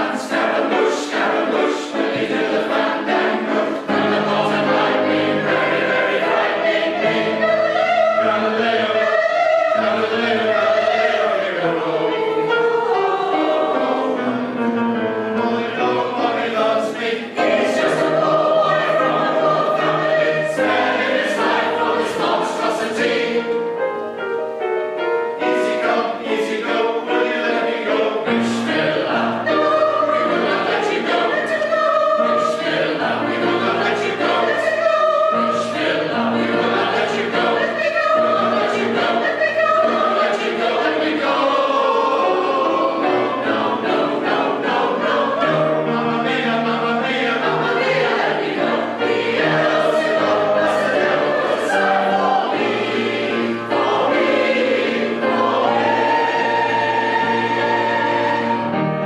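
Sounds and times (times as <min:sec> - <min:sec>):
choir singing: 0:00.0 - 0:59.0
piano: 0:00.0 - 0:59.0.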